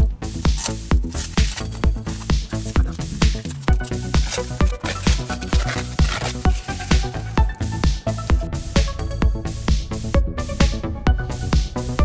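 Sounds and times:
kick drum beat: 7.0s - 11.7s.

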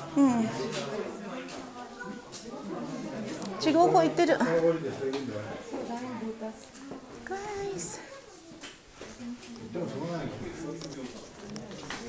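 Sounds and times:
people talking with echo: 0.0s - 12.0s.

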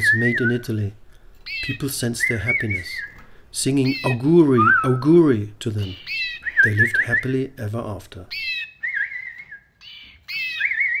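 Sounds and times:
high whistled calls: 0.0s - 0.8s, 1.5s - 3.2s, 3.8s - 7.6s, 8.3s - 11.0s.

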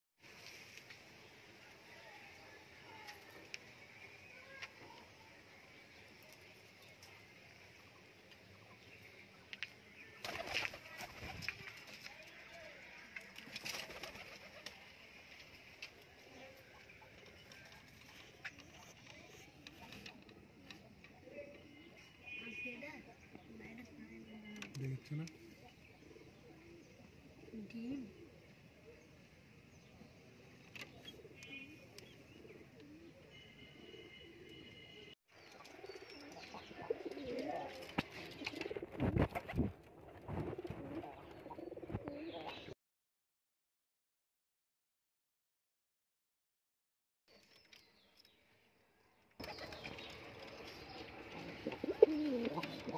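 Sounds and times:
pigeons cooing: 35.7s - 38.9s, 49.4s - 52.9s
pigeon cooing: 51.4s - 52.9s.

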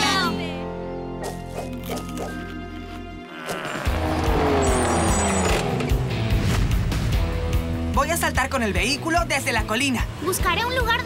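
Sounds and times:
cartoon buggy engine passing: 3.4s - 6.8s.

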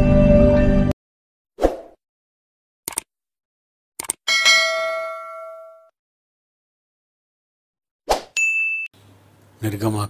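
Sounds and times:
quick clicks: 2.9s - 3.1s, 4.0s - 4.2s
notification bell chime: 8.4s - 8.9s.

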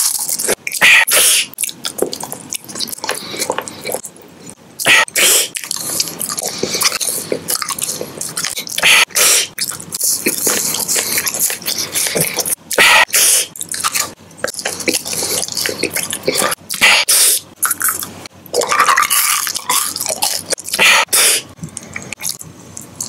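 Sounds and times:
chewing and biting: 0.0s - 23.0s.

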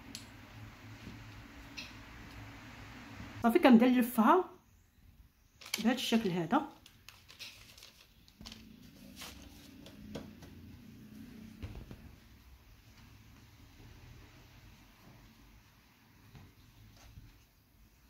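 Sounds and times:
parchment paper rustling: 5.5s - 10.3s.

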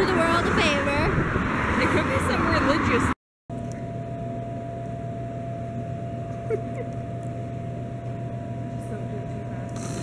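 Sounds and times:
vending machines humming: 3.5s - 10.0s.

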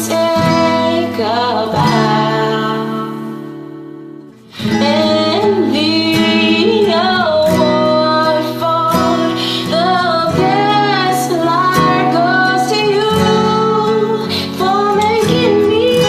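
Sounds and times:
acoustic guitar: 0.0s - 16.0s
woman singing a slow ballad: 0.0s - 16.0s.

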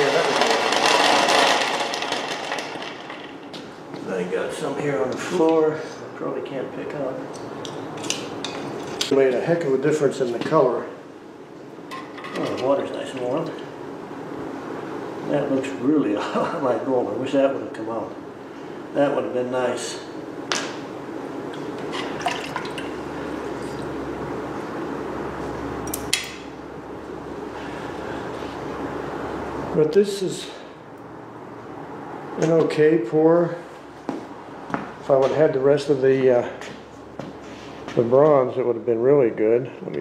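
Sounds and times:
water sloshing and dripping: 22.0s - 23.0s.

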